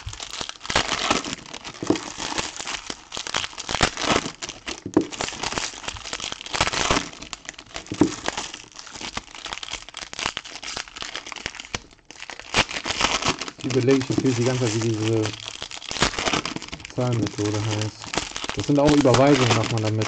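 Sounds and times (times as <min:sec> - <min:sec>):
foil wrappers crinkling: 0:00.0 - 0:20.0.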